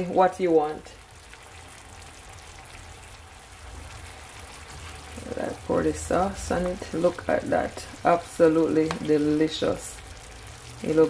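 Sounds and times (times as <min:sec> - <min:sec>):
chicken sizzling in a frying pan: 0:00.0 - 0:11.0.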